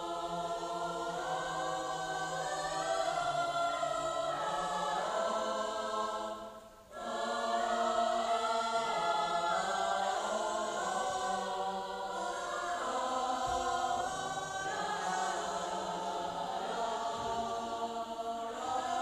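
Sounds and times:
choir singing: 0.0 - 19.0.

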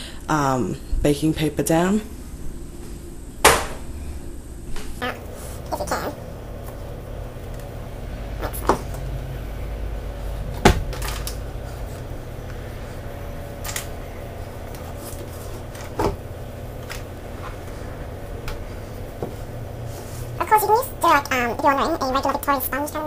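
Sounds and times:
low hum: 2.0 - 21.8.

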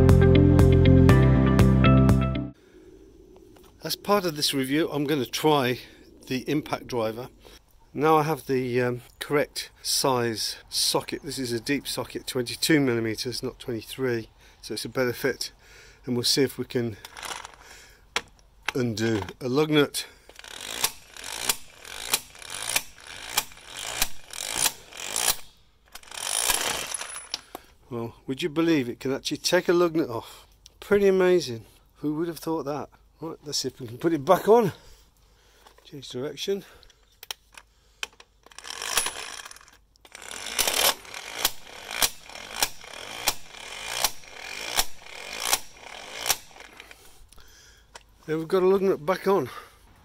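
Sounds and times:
impact wrench high whine: 20.3 - 27.3, 38.5 - 46.9
impact wrench motor whirring: 20.3 - 27.4, 38.4 - 47.0.

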